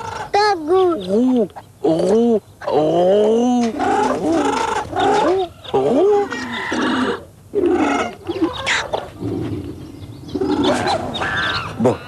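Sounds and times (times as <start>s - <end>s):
zoo animal and bird calls: 0.0s - 12.0s.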